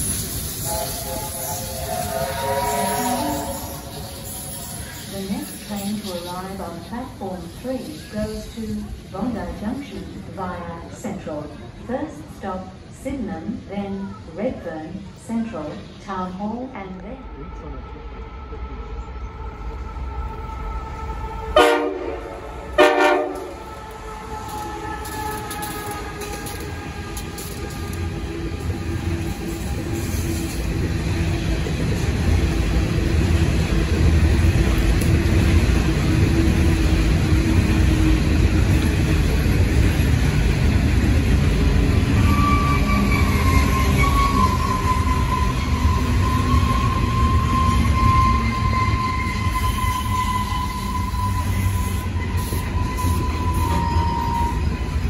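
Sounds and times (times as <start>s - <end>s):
high wheel squeal: 0.0s - 6.4s, 42.0s - 55.0s
train wheels rumbling: 0.0s - 14.2s, 15.7s - 55.0s.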